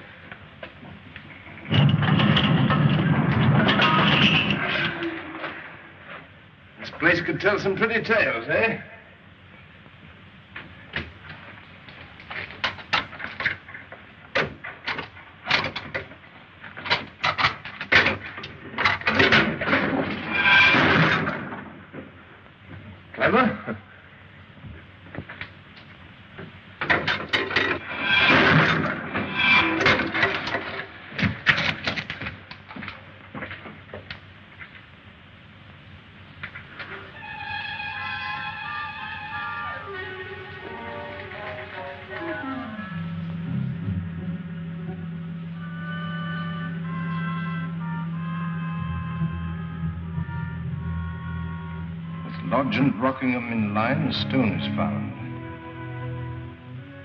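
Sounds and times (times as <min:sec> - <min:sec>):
creaking: 0:24.8 - 0:34.8, 0:36.4 - 0:43.6
film score music: 0:37.2 - 0:57.0.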